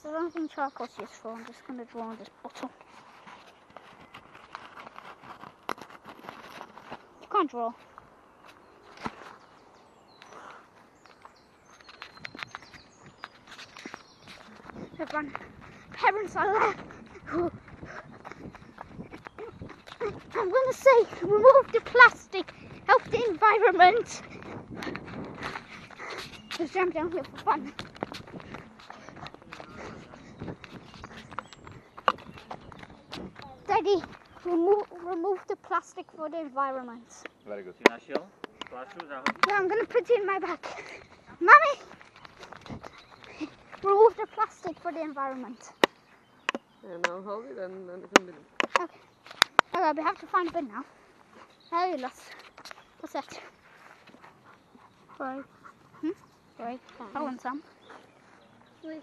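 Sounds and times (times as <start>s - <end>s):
footsteps on gravel: 0.0s - 36.2s, 38.0s - 59.0s.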